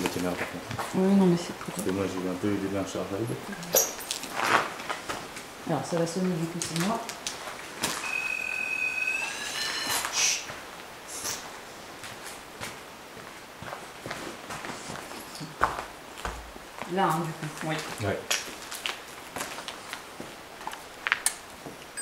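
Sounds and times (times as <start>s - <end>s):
electronic alarm beeping: 8.0s - 10.2s.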